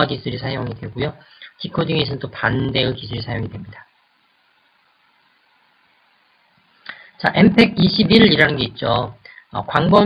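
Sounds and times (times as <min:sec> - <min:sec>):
faint recording hiss: 0:00.0 - 0:10.0
person breathing in: 0:06.8 - 0:07.2.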